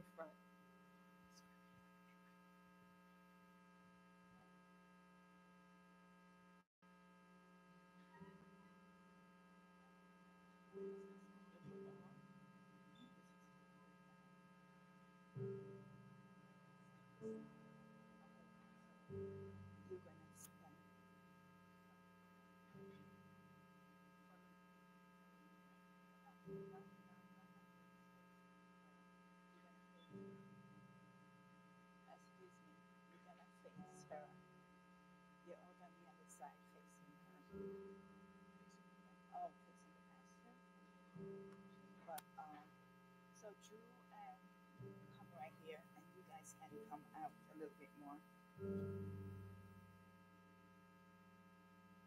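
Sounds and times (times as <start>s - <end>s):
electrical mains hum: 0.0s - 52.0s
faint low murmur: 7.4s - 49.9s.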